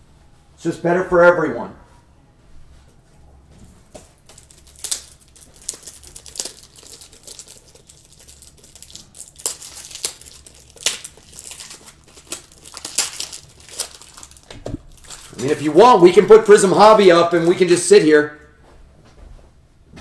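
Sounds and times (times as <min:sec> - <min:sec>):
plastic or paper crinkling: 0:03.8 - 0:18.0.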